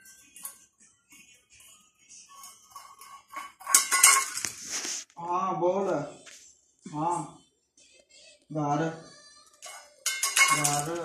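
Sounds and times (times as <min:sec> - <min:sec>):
bowl clattering on hard floor: 0:02.3 - 0:04.6, 0:09.6 - 0:11.0
person's voice: 0:05.2 - 0:06.2, 0:06.9 - 0:07.4, 0:10.4 - 0:11.0.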